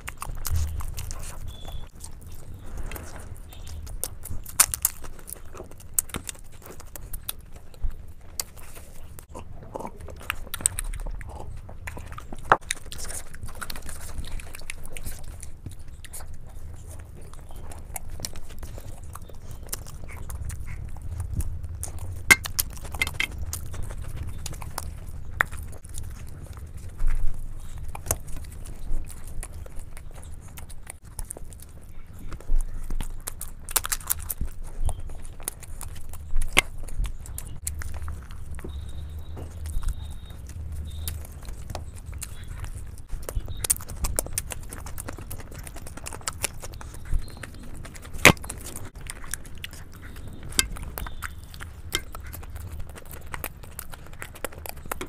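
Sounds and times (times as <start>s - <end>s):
mouth clicks: 0.0s - 25.9s, 31.6s - 55.0s
chewing food: 0.0s - 55.0s.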